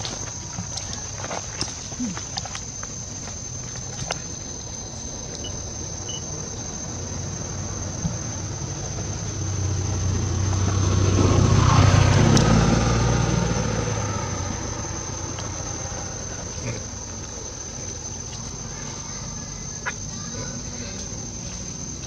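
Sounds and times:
high-pitched insect drone: 0.0 - 22.0
motor vehicle passing by: 6.8 - 17.0.

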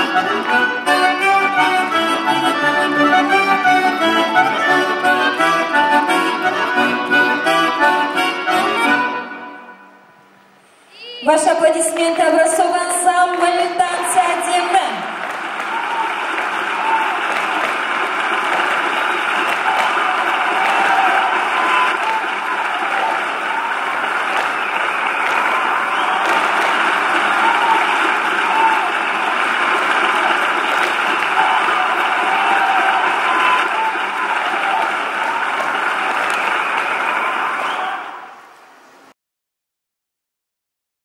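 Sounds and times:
audience applauding: 0.0 - 8.8, 11.8 - 38.6
voices: 10.9 - 15.1.

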